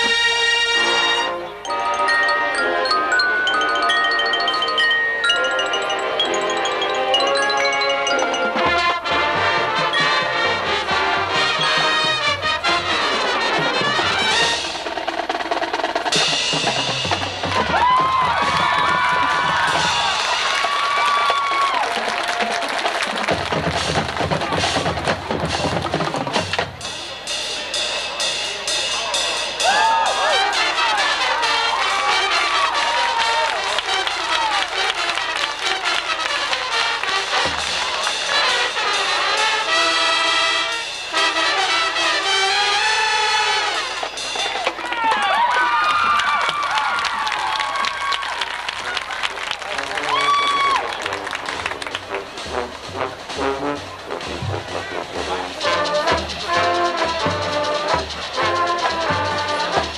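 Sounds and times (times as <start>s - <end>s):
marching band playing: 0.0s - 59.9s
fast snare drum rolls: 9.6s - 39.9s, 43.7s - 59.9s.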